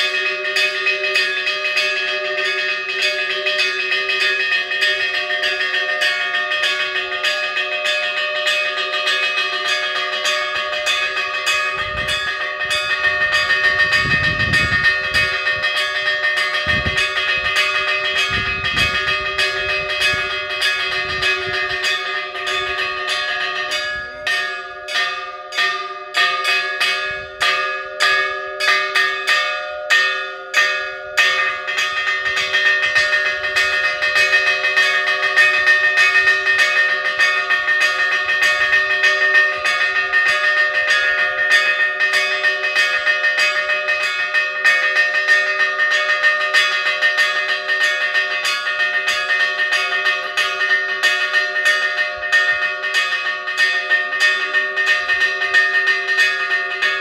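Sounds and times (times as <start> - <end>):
church bells ringing: 0.0 - 57.0.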